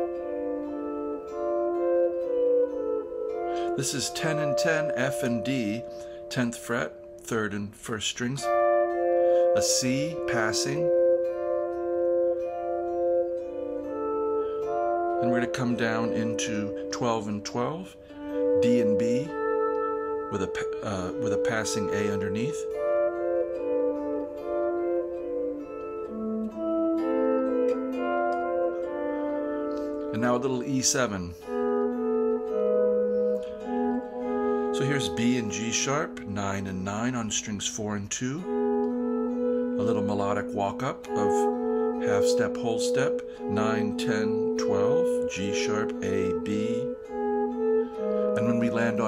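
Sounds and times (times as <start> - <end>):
electric guitar ringing intervals: 0.0 - 7.4, 8.3 - 30.6, 31.4 - 37.3.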